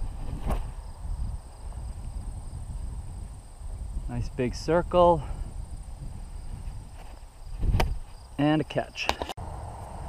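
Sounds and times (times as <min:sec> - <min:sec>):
wind buffeting microphone: 0:00.0 - 0:08.4.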